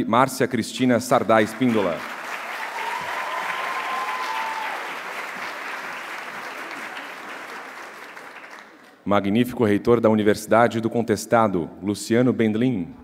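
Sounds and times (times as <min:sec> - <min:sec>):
audience applauding: 0:01.2 - 0:09.0.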